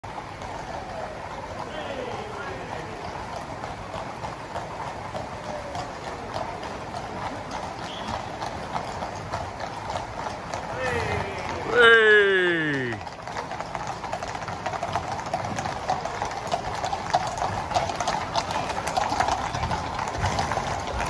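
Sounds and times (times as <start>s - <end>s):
horse hooves on tarmac: 0.0s - 21.0s
loud shout: 10.7s - 13.0s.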